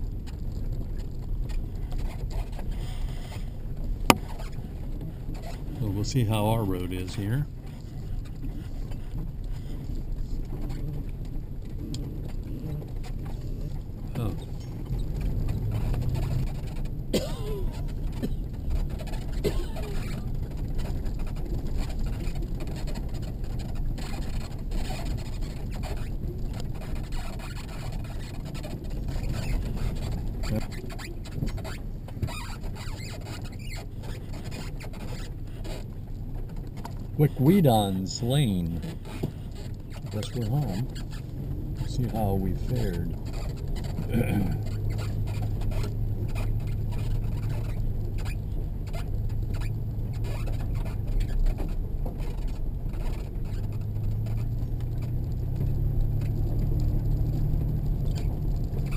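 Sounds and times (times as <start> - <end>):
vehicle driving on gravel road: 0.0 - 58.9
short squeaks: 1.5 - 6.3, 11.8 - 58.9.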